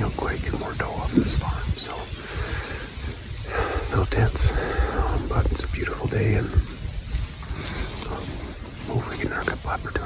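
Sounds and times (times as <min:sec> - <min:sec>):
man whispering: 0:00.0 - 0:06.9, 0:07.6 - 0:10.0
wind buffeting microphone: 0:00.0 - 0:10.0.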